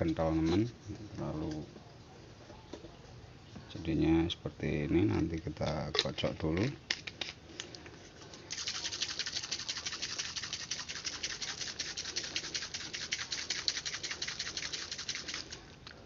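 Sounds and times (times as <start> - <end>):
liquid shaking in plastic bottle: 8.4 - 15.7.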